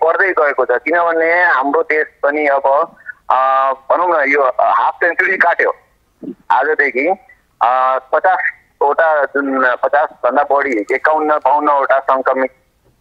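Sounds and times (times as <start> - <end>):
man talking over a telephone: 0.0 - 12.6.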